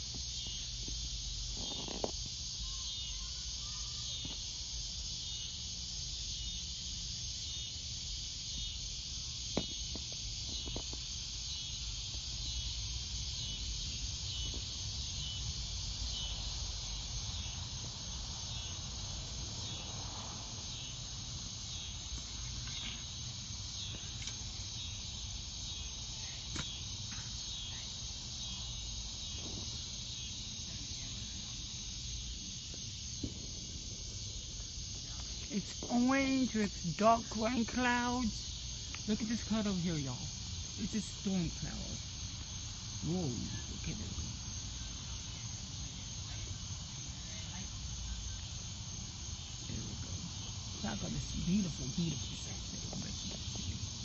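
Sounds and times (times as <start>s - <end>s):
insects chirping: 0.0s - 54.0s.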